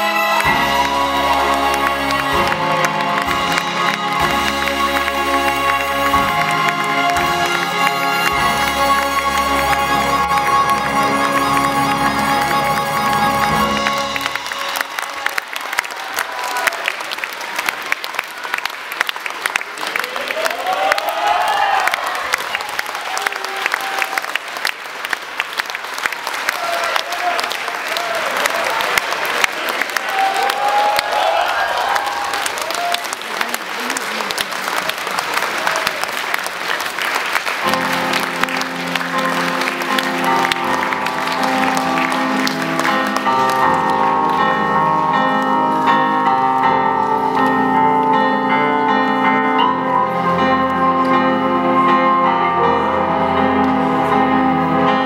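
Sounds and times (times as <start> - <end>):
piano-led music: 0.0 - 16.9, 36.8 - 55.0
audience applauding: 0.0 - 48.5.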